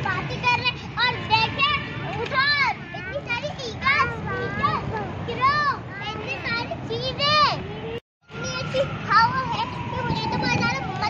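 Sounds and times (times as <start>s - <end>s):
young children talking and calling: 0.0s - 11.0s.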